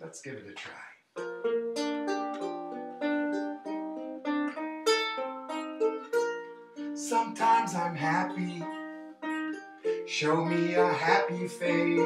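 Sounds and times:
ukulele strumming: 1.2s - 12.0s.

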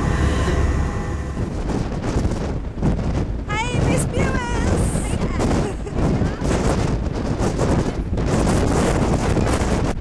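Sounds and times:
vehicle rumble from inside: 0.0s - 2.3s.

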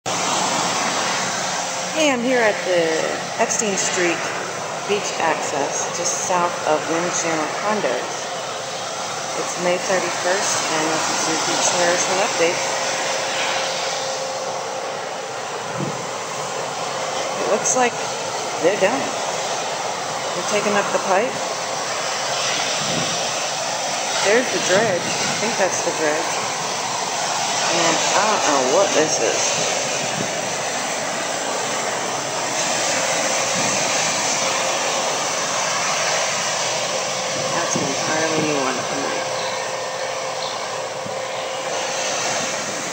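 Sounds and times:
wind: 0.0s - 42.9s
ocean surf breaking on beach: 0.1s - 42.9s.

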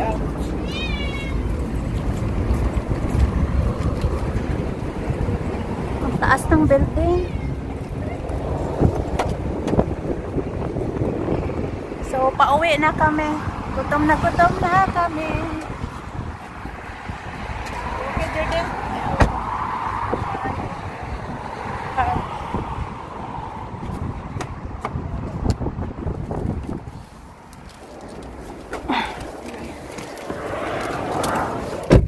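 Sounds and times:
low outdoor rumble: 0.0s - 32.0s
street traffic: 0.0s - 32.0s
wind on microphone: 0.0s - 32.0s.

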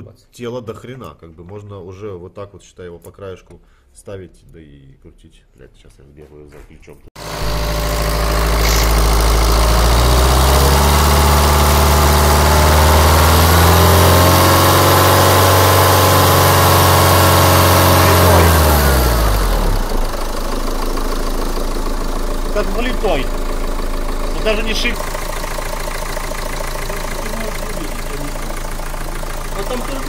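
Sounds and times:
diesel engine idling and revving: 7.2s - 30.0s.

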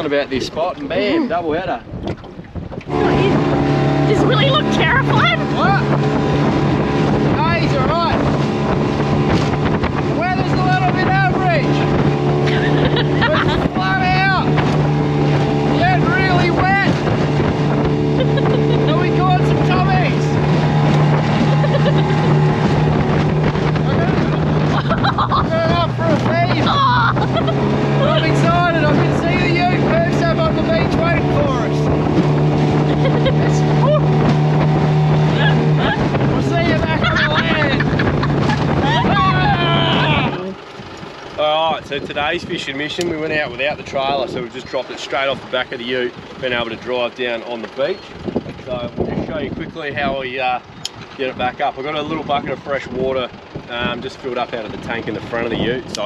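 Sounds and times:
outboard motor droning: 0.0s - 56.0s
wind on microphone: 0.0s - 56.0s.

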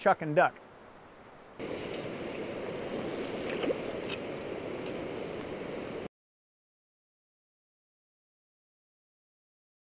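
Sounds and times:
river current rushing: 0.6s - 6.1s.

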